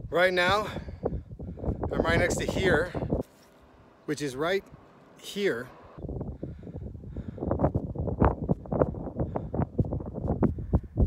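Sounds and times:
wind buffeting microphone: 0:00.0 - 0:04.0, 0:06.0 - 0:11.0.

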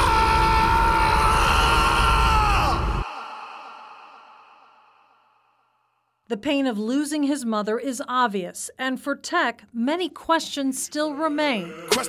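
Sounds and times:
echo of screamed male vocal: 0:00.0 - 0:05.2, 0:11.1 - 0:12.0.

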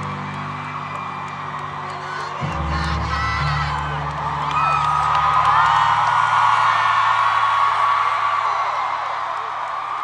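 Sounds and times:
audience screaming and cheering: 0:00.0 - 0:10.0.

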